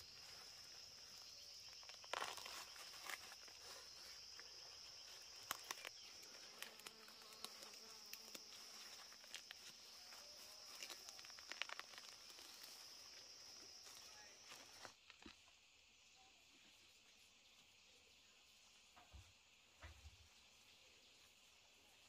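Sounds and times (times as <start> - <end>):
high-pitched insect buzz: 0.0 - 14.9
hand tool digging in soil: 0.0 - 15.0.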